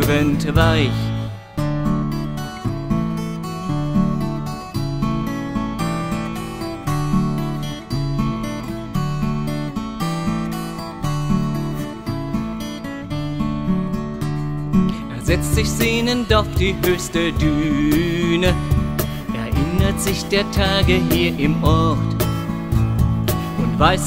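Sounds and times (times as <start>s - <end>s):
acoustic guitar folk music: 0.0s - 24.0s.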